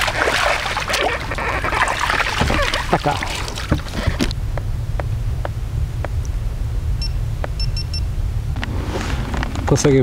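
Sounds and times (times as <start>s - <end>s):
wind rumble on microphone: 3.6s - 10.0s.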